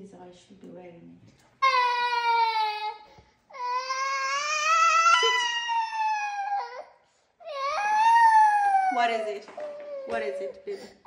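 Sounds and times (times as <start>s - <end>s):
toddler wailing: 1.6s - 10.5s.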